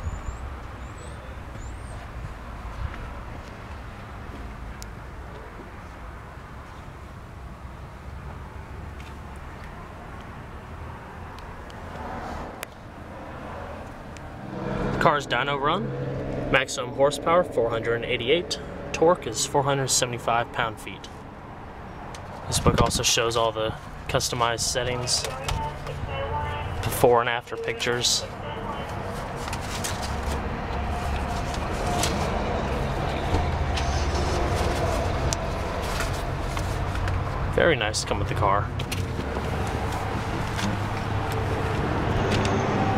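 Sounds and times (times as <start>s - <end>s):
binder pages rustling: 28.8s - 33.2s.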